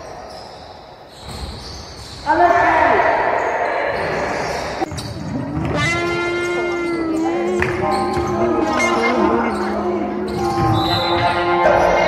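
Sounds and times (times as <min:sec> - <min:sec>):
basketball bouncing on wooden floor: 0:04.8 - 0:06.8.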